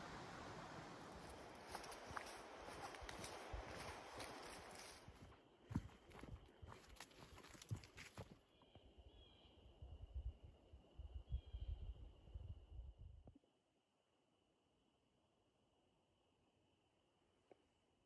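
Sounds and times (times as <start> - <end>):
footsteps on dirt trail: 1.1 - 8.4.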